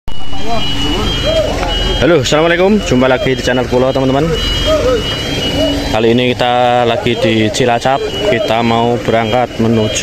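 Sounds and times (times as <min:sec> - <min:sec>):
diesel truck engine rumbling: 0:00.1 - 0:10.0
high-pitched steady beep: 0:00.1 - 0:10.0.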